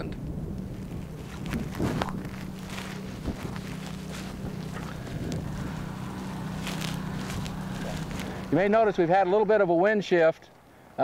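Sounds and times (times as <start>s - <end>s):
wind buffeting microphone: 0.0s - 9.0s
engine humming: 0.0s - 11.0s
grass fire crackling and popping: 0.2s - 9.2s.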